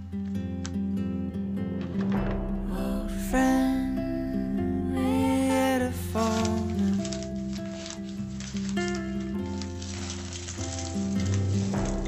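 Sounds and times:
soft instrumental music: 0:00.0 - 0:12.0
light crackling rustle: 0:06.1 - 0:12.0.

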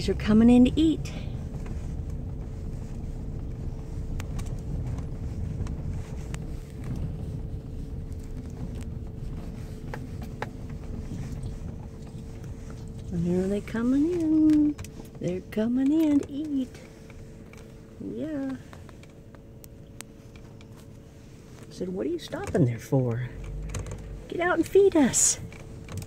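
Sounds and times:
faint steady hum: 0:00.0 - 0:26.0
vehicle rumble inside cab: 0:00.0 - 0:26.0.

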